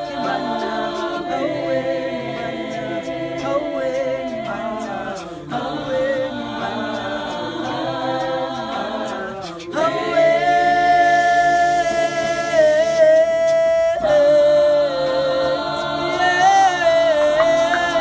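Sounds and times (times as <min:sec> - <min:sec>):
choir singing a cappella: 0:00.0 - 0:18.0.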